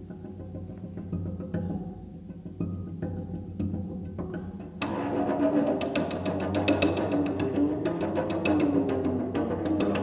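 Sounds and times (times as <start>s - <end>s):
cello playing percussive figures: 0.0s - 10.0s.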